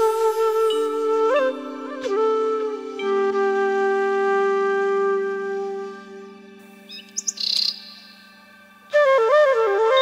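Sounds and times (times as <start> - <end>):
bamboo flute melody: 0.0 - 10.0
bird chirping: 6.8 - 8.5.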